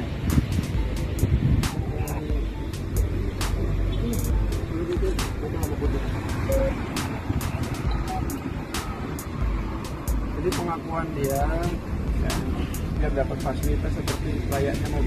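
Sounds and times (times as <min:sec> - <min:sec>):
background music: 0:00.0 - 0:15.0
low rumble of road traffic: 0:00.0 - 0:15.0.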